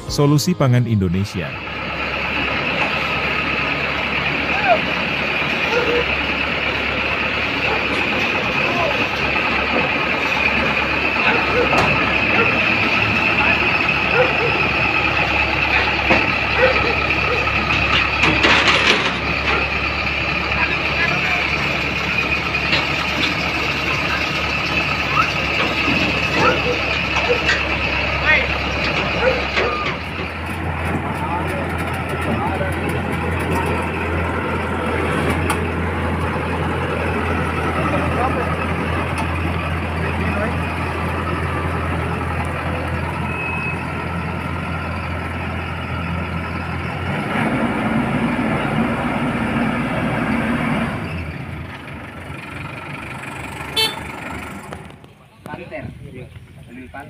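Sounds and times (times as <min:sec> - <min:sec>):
combine harvester engine humming: 0:00.0 - 0:57.0.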